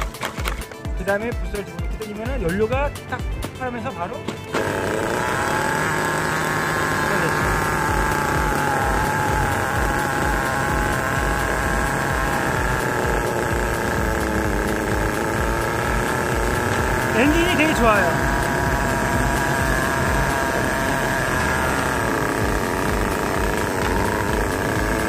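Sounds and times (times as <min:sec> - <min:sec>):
model engine idling with rattle: 0:04.4 - 0:25.0.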